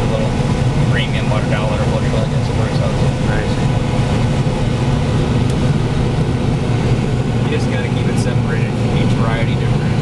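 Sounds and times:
combine harvester engine drone: 0.0 - 10.0.

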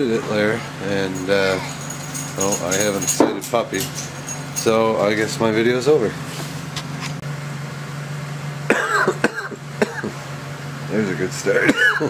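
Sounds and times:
car engine idling: 0.0 - 12.0
person coughing: 8.7 - 10.2, 11.6 - 12.0.

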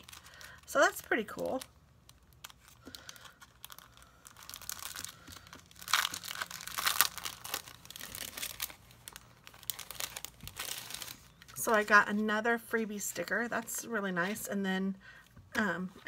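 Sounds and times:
plastic cellophane crinkling: 0.0 - 12.2.

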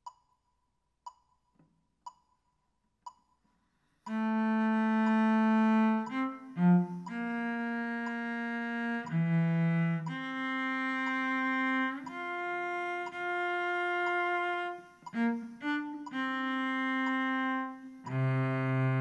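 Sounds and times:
metronome clicking: 0.0 - 19.0
cello bowed notes: 4.1 - 19.0.

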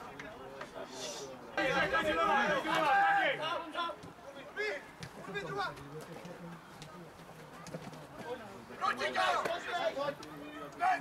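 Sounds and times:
men shouting and talking: 0.0 - 11.0.

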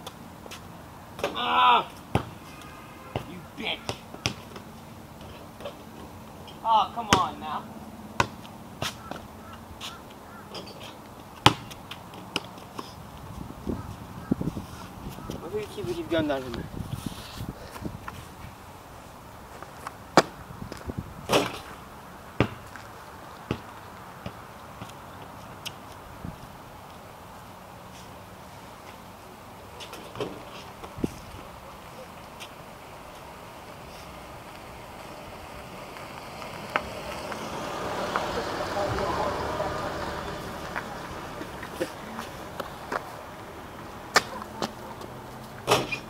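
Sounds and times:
basketball bouncing on pavement: 2.0 - 2.4, 3.1 - 5.8, 7.0 - 7.4, 8.2 - 10.1, 11.4 - 12.7, 19.8 - 21.7, 22.3 - 22.9, 23.5 - 25.8
basketball strike: 11.4 - 11.8.

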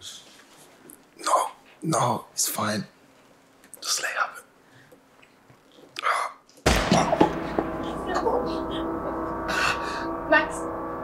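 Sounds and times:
gunshots: 6.7 - 8.0
steady ringing tone: 7.2 - 11.0.

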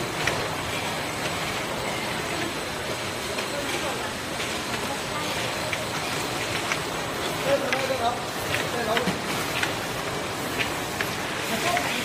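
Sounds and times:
labeling machine and conveyor running: 0.0 - 12.0.

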